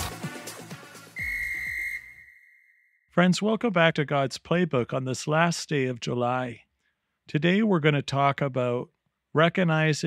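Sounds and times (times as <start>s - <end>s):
music: 0.0s - 1.4s
high-pitched whistle blast: 1.2s - 3.1s.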